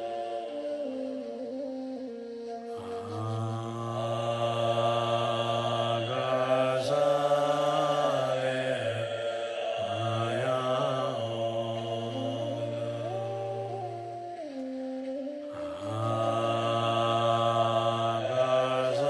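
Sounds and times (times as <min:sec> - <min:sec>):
man chanting in a low voice: 0:02.7 - 0:14.2, 0:15.5 - 0:19.0.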